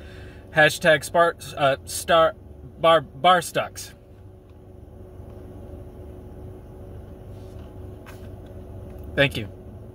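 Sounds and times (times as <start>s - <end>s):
car interior rumble and hum: 0.0s - 9.9s.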